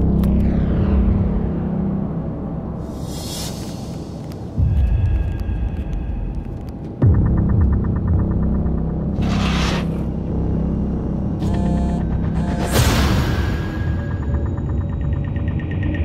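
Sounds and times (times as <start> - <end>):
low droning rumble: 0.0 - 3.0
whoosh: 9.2 - 10.1.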